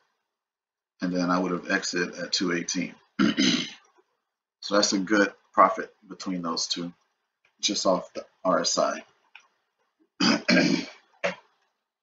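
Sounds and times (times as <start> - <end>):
man clearing his throat: 3.2 - 3.8, 10.2 - 11.4.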